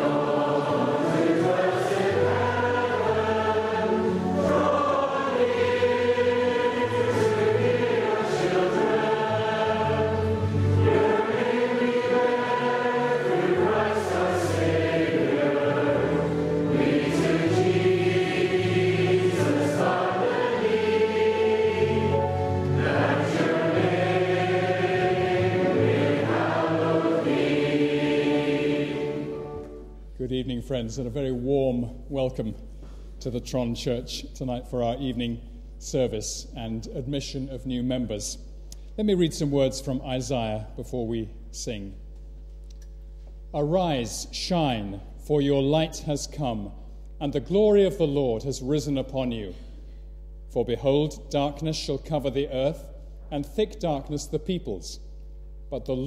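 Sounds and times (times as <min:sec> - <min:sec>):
choir singing: 0:00.0 - 0:30.0.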